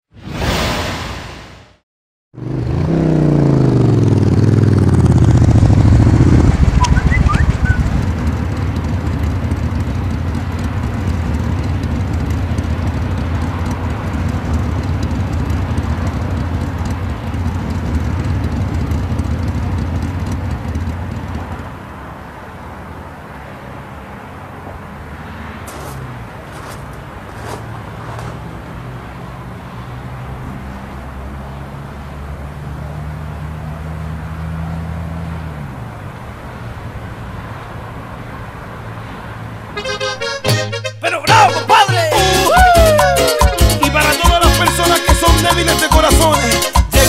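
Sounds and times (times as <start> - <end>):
motorcycle engine running: 2.4 - 21.7
street background noise: 2.4 - 47.0.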